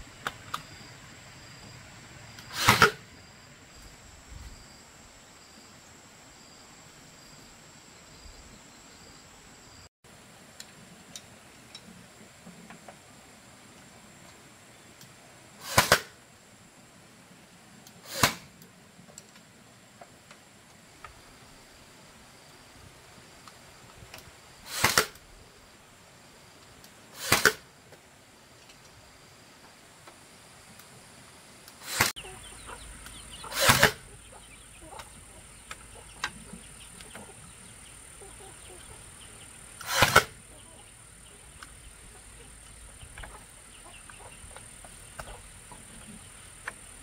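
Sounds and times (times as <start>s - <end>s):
bamboo slats sliding scrape: 2.5s - 3.0s, 15.6s - 16.1s, 18.0s - 18.5s, 24.7s - 25.2s, 27.2s - 27.6s, 31.8s - 32.2s, 33.4s - 34.1s, 39.8s - 40.4s.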